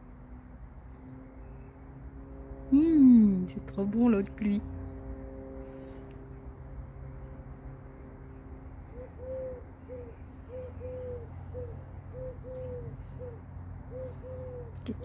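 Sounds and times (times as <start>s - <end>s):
steady low hum: 0.0s - 15.0s
dove cooing: 8.8s - 15.0s.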